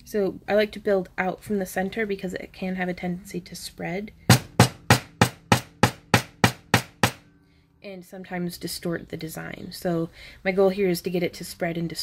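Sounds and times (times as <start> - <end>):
hammer tapping wire on anvil: 4.3 - 7.4.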